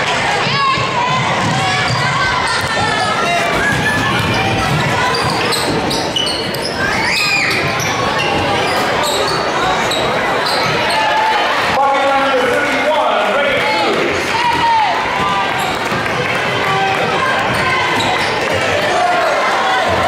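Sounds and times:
crowd talking and calling out: 0.0 - 20.0
shoes squeaking: 3.5 - 11.3, 17.2 - 18.6.

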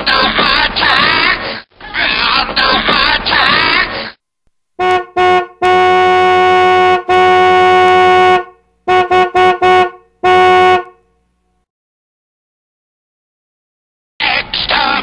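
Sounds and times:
car horn honking: 4.8 - 11.2.

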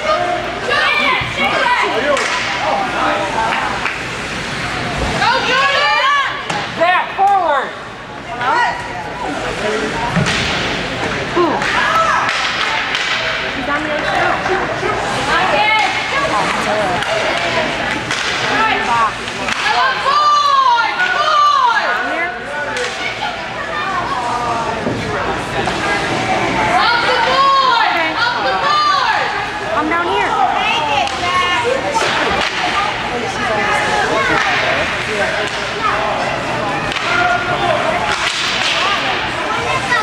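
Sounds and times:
hockey stick striking puck: 11.6 - 13.3, 18.1 - 18.5, 38.1 - 39.0
spectators shouting: 14.2 - 22.2, 26.0 - 40.0.

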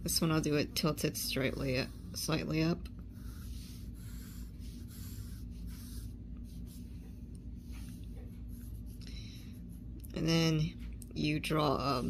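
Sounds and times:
pencil scratching on paper: 0.5 - 9.9.

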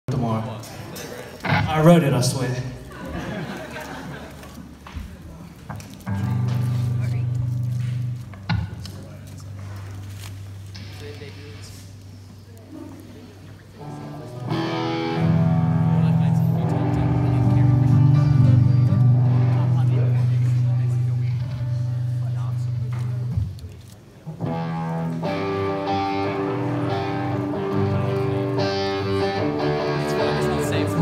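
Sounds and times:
electric guitar chords: 6.0 - 11.1, 13.8 - 23.5, 24.4 - 31.0
electric bass notes: 6.0 - 11.2, 13.8 - 23.6, 24.4 - 31.0.

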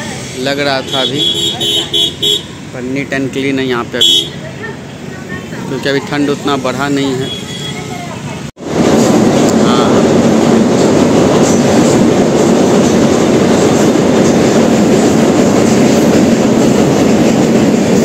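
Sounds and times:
train wheels rumbling on steel bridge: 7.8 - 18.0.

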